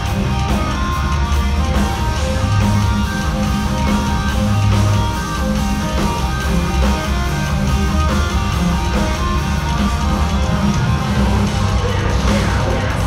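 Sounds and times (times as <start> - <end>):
metal band playing live: 0.0 - 13.0.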